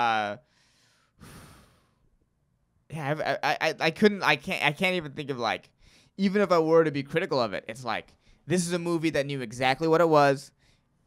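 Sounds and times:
person sighing: 1.2 - 2.0.

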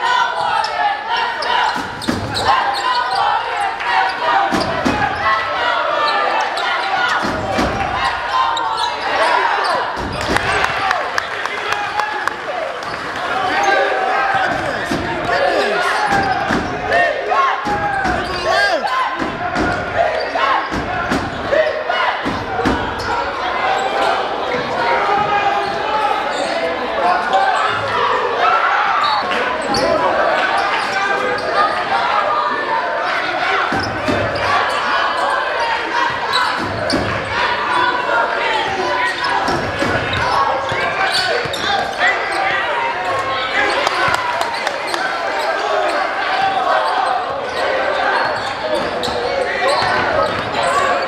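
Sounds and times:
crowd chattering and calling out: 0.0 - 51.0.

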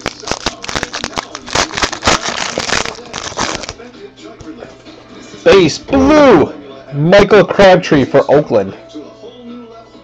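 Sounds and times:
man calling out: 5.5 - 6.5.

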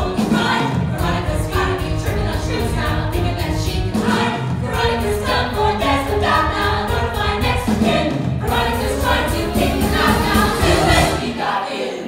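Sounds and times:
band accompaniment: 0.0 - 11.4.

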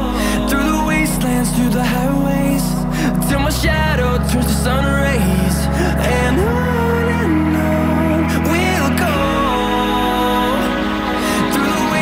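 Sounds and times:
slow soft song: 0.0 - 12.0.

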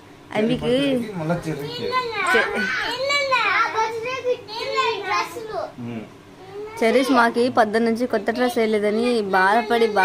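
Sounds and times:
children calling out in play: 1.7 - 5.8, 8.7 - 10.0.

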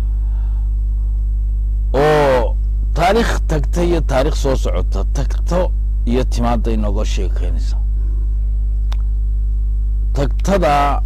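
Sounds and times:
low electrical hum: 0.0 - 11.0
man's drawn-out syllable: 1.9 - 6.8.

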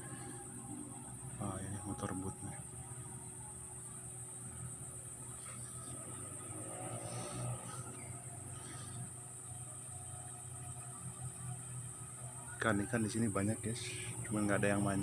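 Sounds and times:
insects buzzing: 0.0 - 15.0
motorboat engine droning: 0.0 - 15.0.

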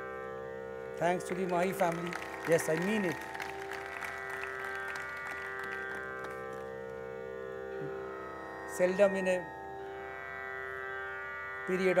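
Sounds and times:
steady tanpura drone: 0.0 - 12.0.

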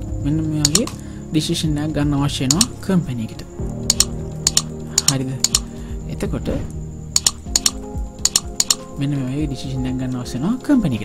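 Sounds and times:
keyboard keystrokes clicking: 0.6 - 1.0, 2.5 - 2.7, 3.9 - 5.7, 7.2 - 8.9.

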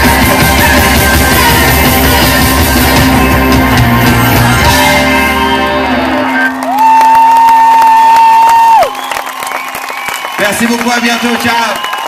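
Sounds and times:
crowd cheering and clapping: 0.0 - 12.0.

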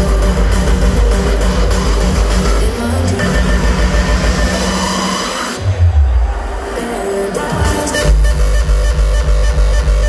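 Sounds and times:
electronic dance music: 0.0 - 10.0
heavy bass drone: 0.0 - 10.0.

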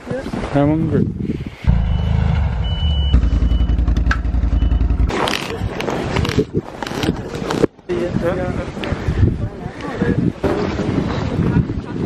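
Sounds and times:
short high beep: 1.7 - 5.1
snowmobile engine running: 1.7 - 5.5.

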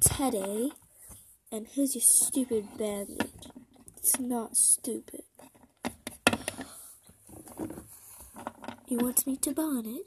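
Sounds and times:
plastic figurines tapping: 8.4 - 9.6.

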